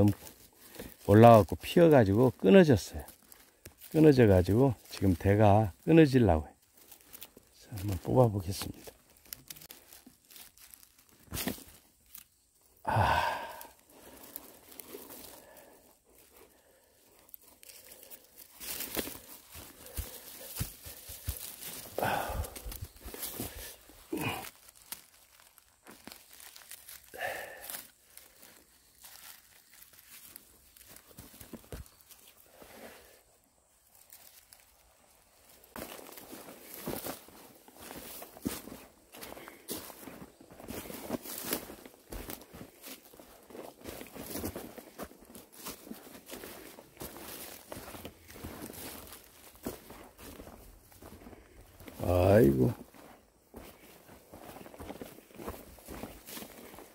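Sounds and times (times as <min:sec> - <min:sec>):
brushing of undergrowth: 0:00.0 - 0:56.9
footsteps crunching on dry leaves: 0:00.0 - 0:56.9
person breathing or grunting: 0:12.8 - 0:14.2, 0:22.0 - 0:22.7, 0:23.6 - 0:24.6, 0:27.1 - 0:27.8.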